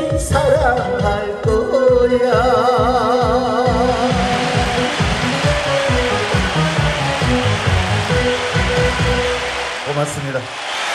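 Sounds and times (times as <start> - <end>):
instrumental backing track over speakers: 0.0 - 10.5.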